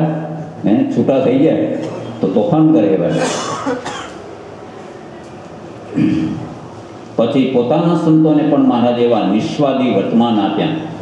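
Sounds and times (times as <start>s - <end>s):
man coughing: 3.1s - 4.2s, 5.9s - 6.4s.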